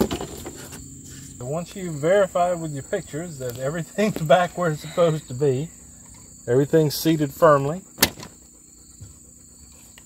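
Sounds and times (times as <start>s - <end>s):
insect chirring: 0.0s - 10.0s.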